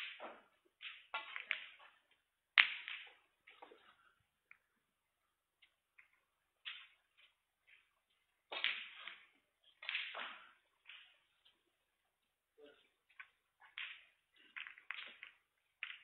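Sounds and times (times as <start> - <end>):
snooker balls clacking: 0.0 - 4.8, 5.6 - 11.8, 13.1 - 16.0.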